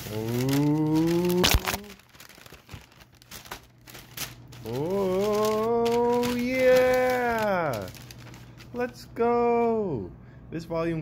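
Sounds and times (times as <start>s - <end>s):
paper packing crinkling: 0.0s - 9.0s.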